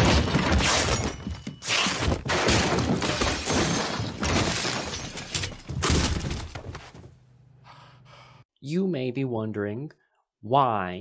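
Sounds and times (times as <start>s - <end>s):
objects crashing and clattering: 0.0s - 7.0s.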